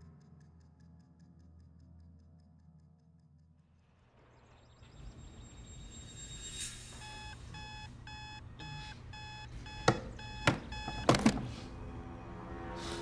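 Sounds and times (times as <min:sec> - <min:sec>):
alarm clock beeping: 0:04.9 - 0:11.2.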